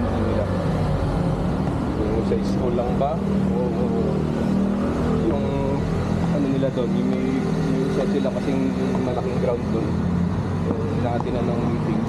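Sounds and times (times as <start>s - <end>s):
street noise: 0.0s - 12.0s
vehicle engine running: 0.0s - 12.0s.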